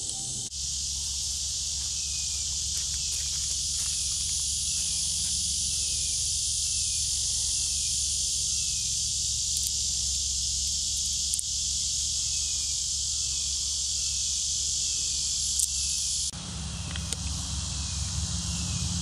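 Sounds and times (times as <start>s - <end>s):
hiss over low rumble: 0.0s - 19.0s
insect chorus: 0.0s - 19.0s.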